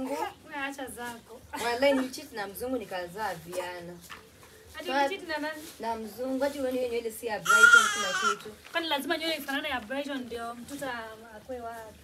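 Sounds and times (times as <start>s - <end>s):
baby crying: 7.5s - 8.4s.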